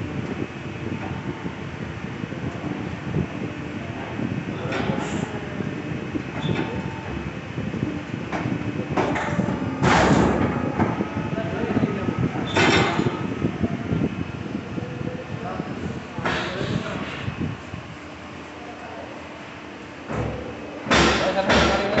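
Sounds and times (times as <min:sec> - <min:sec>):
steady workshop hum: 0:00.0 - 0:22.0.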